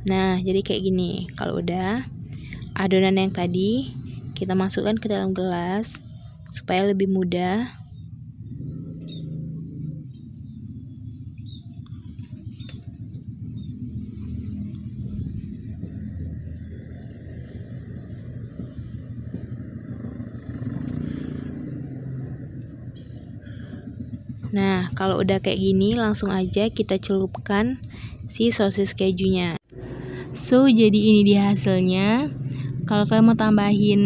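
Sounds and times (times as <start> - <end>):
vehicle engine rumble: 0.0 - 34.0.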